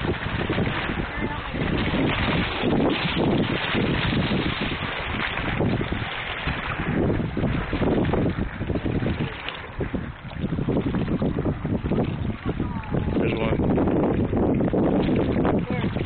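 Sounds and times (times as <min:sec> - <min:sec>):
water rushing around boat: 0:00.0 - 0:16.0
wind buffeting microphone: 0:00.0 - 0:16.0.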